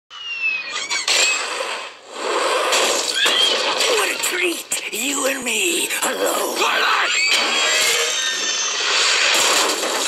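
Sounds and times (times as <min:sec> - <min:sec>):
loud squealing noise: 0:06.9 - 0:09.5.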